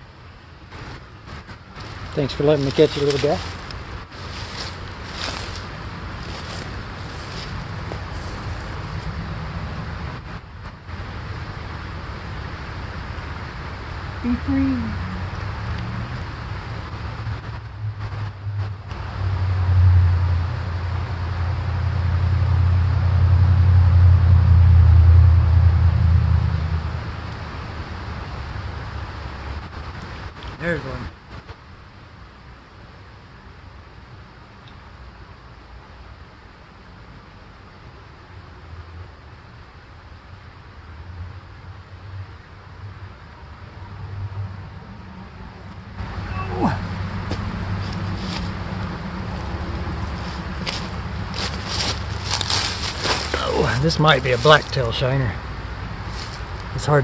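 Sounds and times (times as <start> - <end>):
outdoor background noise: 0.0 - 57.0
low rumble: 14.2 - 30.0.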